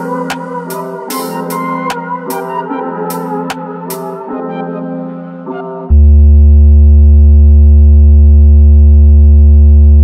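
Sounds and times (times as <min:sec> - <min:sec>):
low synth bass note: 0:05.9 - 0:10.0.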